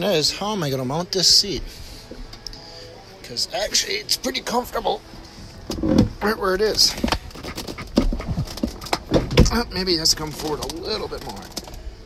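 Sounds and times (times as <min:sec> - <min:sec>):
knocks and rustles in car seat: 0:06.8 - 0:09.6.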